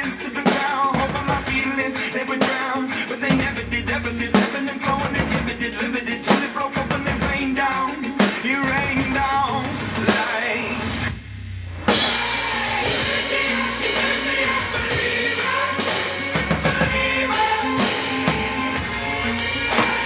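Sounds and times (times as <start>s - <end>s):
recorded pop-rock song with vocals: 0.0s - 11.2s, 11.9s - 20.0s
drum kit played with sticks: 0.0s - 20.0s.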